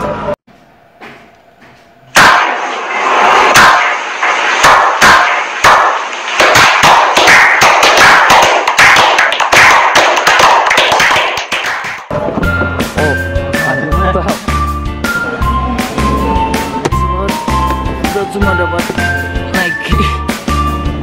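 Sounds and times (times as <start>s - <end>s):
group clapping: 4.6s - 12.1s.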